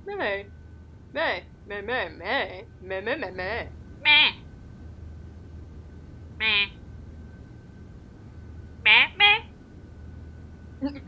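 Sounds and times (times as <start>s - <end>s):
squeaky puppet voice: 4.0s - 4.4s, 6.4s - 6.8s, 8.9s - 9.5s.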